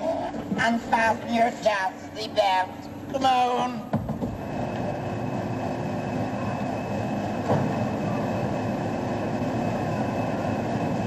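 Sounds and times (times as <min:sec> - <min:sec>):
faint steady whine: 0:00.0 - 0:11.0.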